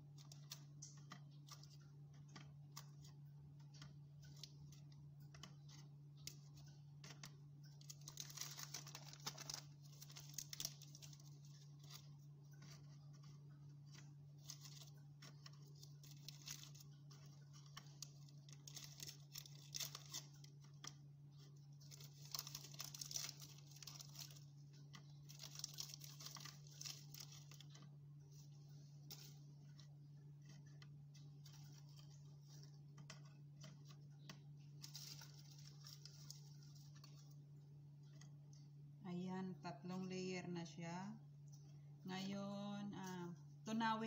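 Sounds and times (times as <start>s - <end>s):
plastic packet crinkling and tearing: 0.0s - 38.4s
low steady hum: 0.0s - 44.0s.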